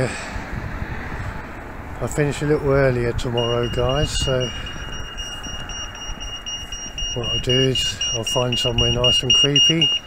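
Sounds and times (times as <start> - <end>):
crossing signal beeping: 3.2 - 10.0.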